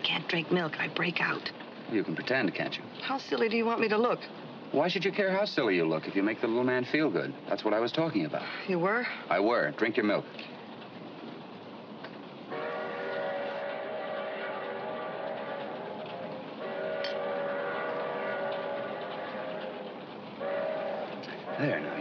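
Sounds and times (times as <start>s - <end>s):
train running noise: 0.0s - 22.0s
train whistle blowing a chord: 12.5s - 22.0s.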